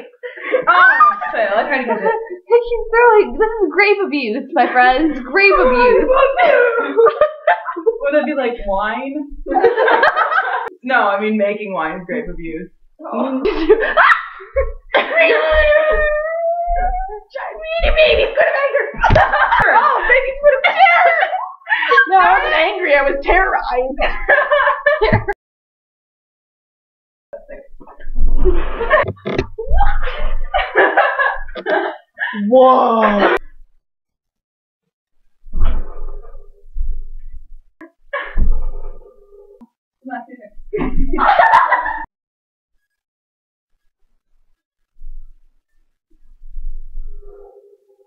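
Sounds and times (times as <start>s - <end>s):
women calling out and laughing: 0.6s - 6.8s, 15.0s - 18.9s, 19.5s - 23.4s
woman wailing: 15.0s - 18.4s.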